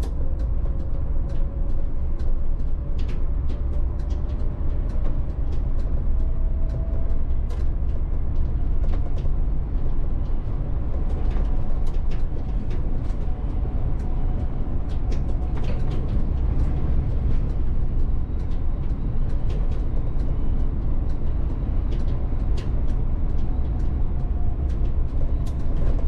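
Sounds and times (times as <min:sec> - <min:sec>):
bus road rumble: 0:00.0 - 0:26.0.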